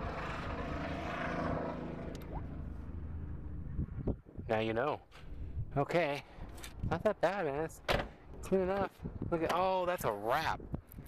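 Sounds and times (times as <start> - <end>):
vehicle engine rumbling: 0.0 - 8.9.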